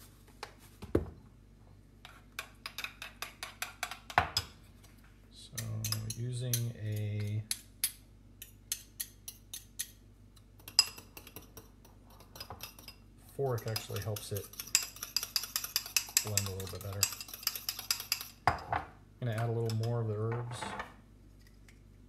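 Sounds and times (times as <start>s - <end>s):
spoon clinking in ceramic bowl: 10.6s - 13.0s, 13.6s - 18.7s.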